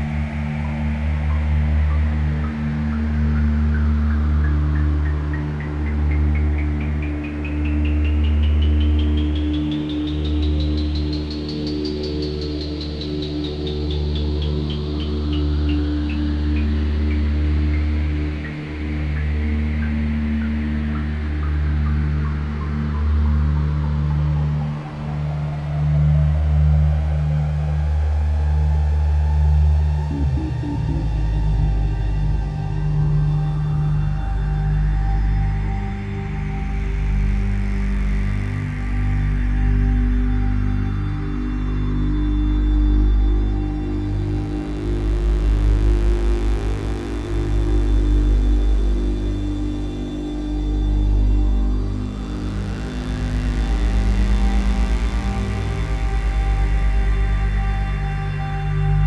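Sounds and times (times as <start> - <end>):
ambient electronic music: 0.0 - 59.0
low sustained synth drone: 0.0 - 59.0.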